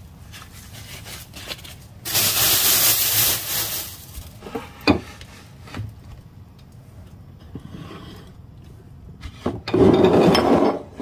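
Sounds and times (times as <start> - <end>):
loud hiss: 2.0 - 4.3.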